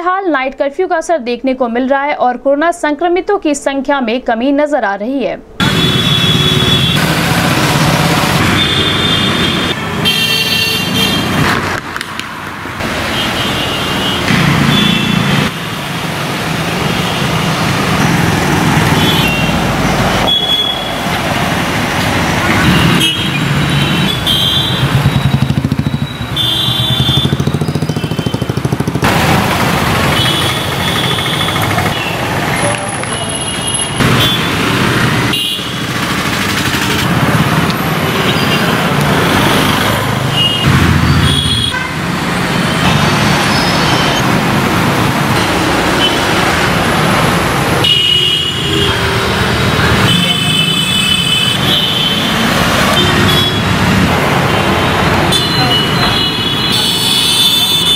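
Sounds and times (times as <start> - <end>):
motorcycles and cars passing: 5.6 - 57.9.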